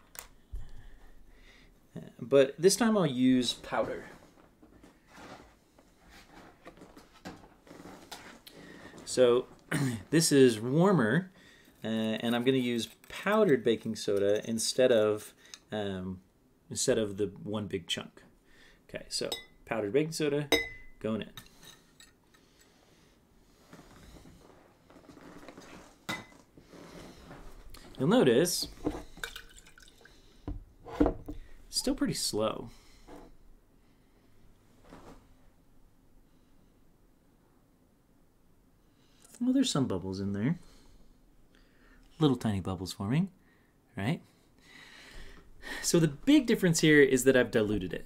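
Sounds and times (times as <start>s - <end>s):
faint handling sounds: 2.7s - 10.2s, 21.2s - 30.1s, 30.8s - 35.6s
objects rustling: 3.5s - 9.7s, 23.5s - 30.1s
hard object clinking on glass dish: 20.5s - 22.2s.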